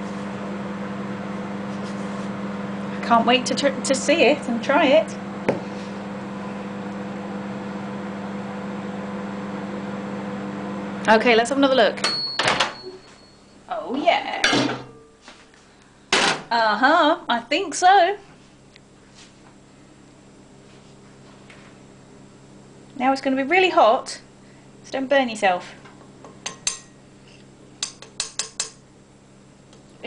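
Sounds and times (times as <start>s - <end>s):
people talking: 3.0s - 5.2s, 11.0s - 12.0s, 13.7s - 14.6s, 16.5s - 18.2s, 23.0s - 24.2s, 24.8s - 25.8s.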